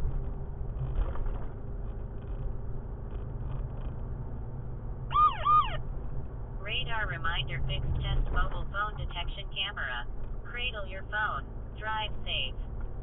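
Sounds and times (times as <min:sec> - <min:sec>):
car cabin road rumble: 0:00.0 - 0:13.0.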